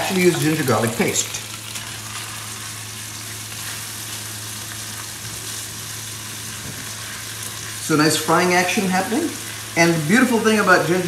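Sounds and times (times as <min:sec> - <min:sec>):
paste sizzling in hot oil: 0:00.0 - 0:11.0.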